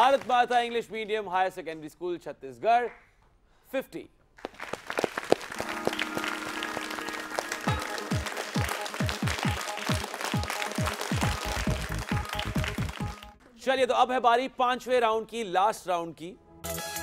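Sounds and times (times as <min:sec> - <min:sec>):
audience applause: 0:00.0 - 0:00.8, 0:04.4 - 0:13.4.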